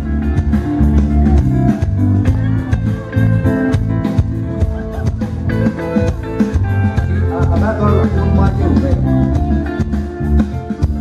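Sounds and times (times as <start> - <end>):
bass guitar: 0.0 - 11.0
drums keeping steady beat: 0.0 - 11.0
keyboards: 0.0 - 11.0.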